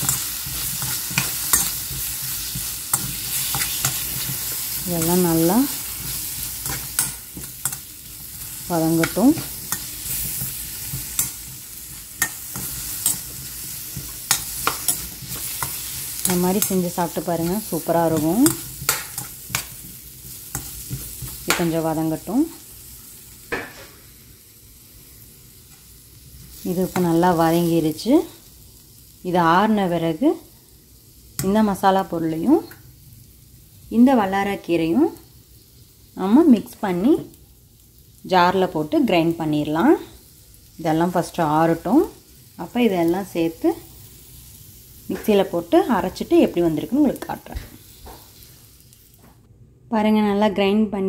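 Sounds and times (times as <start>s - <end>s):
spatula scraping a pan: 0.0s - 16.8s
food sizzling in a pan: 0.0s - 49.4s.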